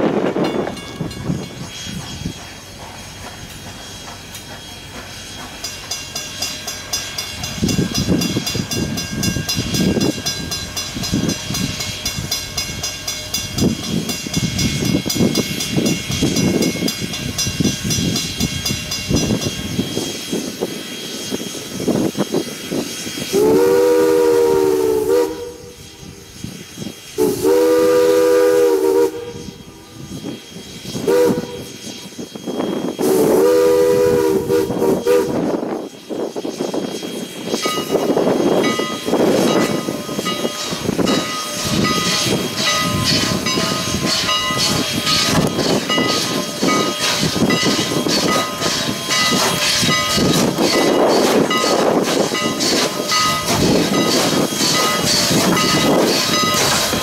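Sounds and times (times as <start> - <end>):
rail clatter: 0.0 - 24.2, 26.4 - 57.0
gusty wind: 0.0 - 57.0
steam locomotive exhaust beat: 0.0 - 57.0
steam whistle chord: 23.3 - 26.3, 27.2 - 35.5.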